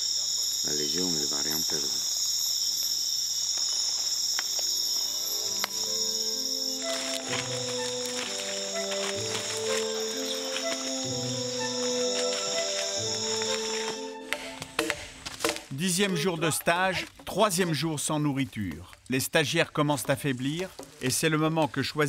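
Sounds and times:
night insect chorus: 0.0 - 14.7
slow music with held notes: 4.6 - 15.0.

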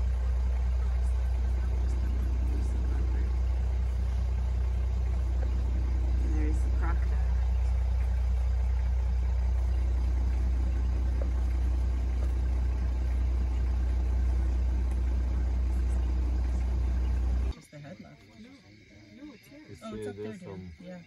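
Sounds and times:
vehicle engine idling: 0.0 - 17.5.

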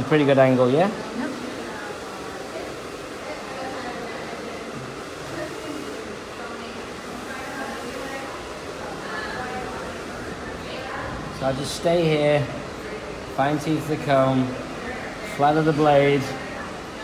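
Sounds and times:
faint voices talking: 0.0 - 17.0
salon room noise: 0.0 - 17.0.

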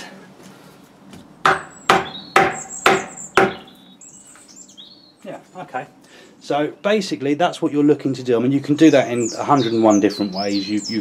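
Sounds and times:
faint birds chirping: 0.0 - 11.0
mallet knocking wood: 1.4 - 3.7.

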